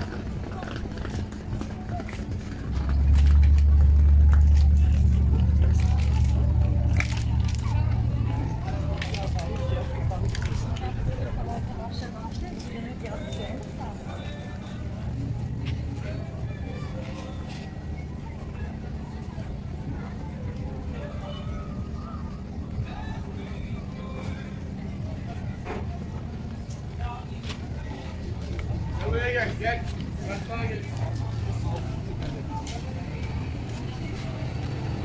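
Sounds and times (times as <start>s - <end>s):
steady low rumble: 0.0s - 35.0s
voices of passers-by: 0.0s - 35.0s.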